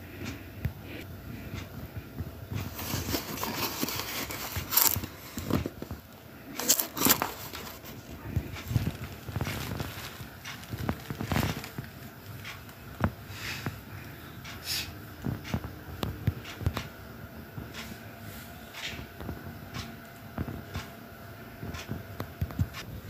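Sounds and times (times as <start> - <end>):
cardboard box handling noise: 2.6 - 11.8.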